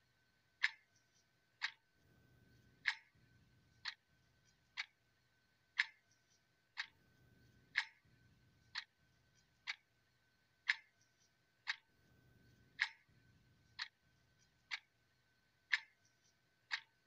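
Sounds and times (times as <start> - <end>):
clock ticking: 0.6 - 1.8, 2.8 - 4.1, 4.7 - 5.0, 5.7 - 7.0, 7.7 - 8.1, 8.7 - 9.9, 10.6 - 11.9, 12.5 - 17.0.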